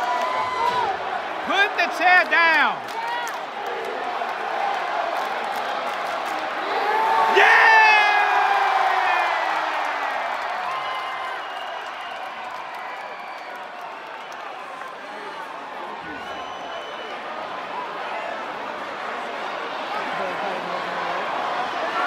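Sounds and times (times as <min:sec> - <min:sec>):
crowd cheering with whoops: 0:00.0 - 0:18.4.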